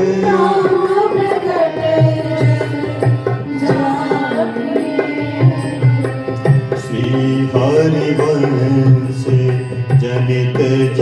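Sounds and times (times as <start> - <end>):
harmonium chords: 0.0 - 11.0
person singing: 0.0 - 11.0.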